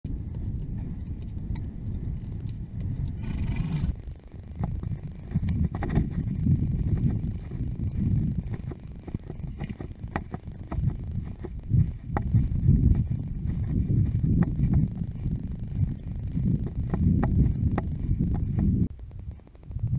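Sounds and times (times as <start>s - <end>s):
wind buffeting microphone: 0.1s - 19.9s.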